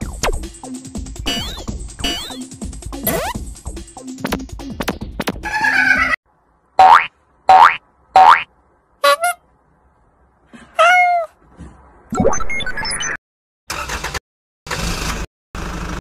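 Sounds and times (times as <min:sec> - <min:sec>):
music: 0:00.0 - 0:06.2
cartoon boing sound effects: 0:06.8 - 0:08.5.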